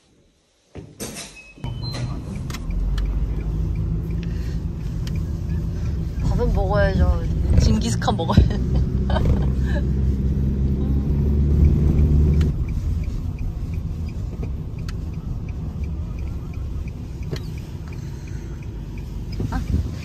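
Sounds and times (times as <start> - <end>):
car road and engine rumble: 1.6 - 20.0
faint regular ticking: 2.3 - 9.0, 9.6 - 20.0.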